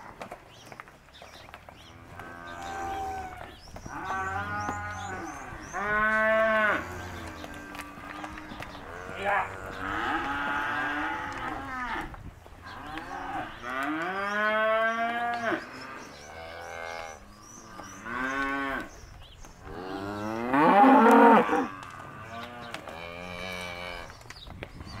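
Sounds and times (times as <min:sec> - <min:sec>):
cows mooing: 0:01.8 - 0:19.0, 0:19.6 - 0:24.1.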